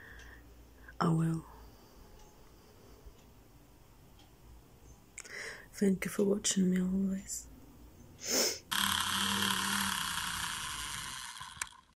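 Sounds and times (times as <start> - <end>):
breathy puff: 8.2 - 10.0
click: 11.6 - 11.8.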